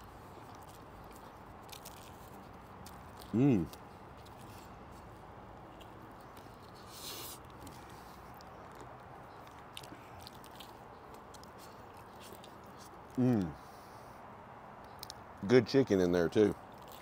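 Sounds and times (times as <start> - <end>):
man chewing: 0.0 - 13.8, 16.7 - 17.0.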